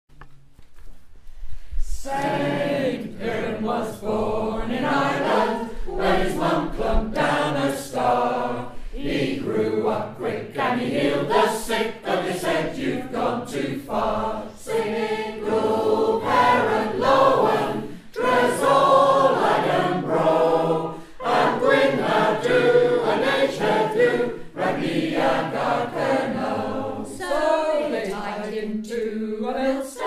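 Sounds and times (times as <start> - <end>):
choir singing a folk song: 1.7 - 30.0.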